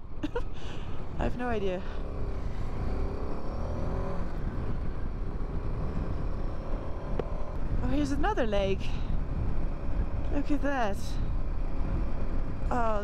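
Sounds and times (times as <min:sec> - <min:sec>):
low rumble of riding noise: 0:00.0 - 0:13.0
motorcycle engine running: 0:00.0 - 0:13.0.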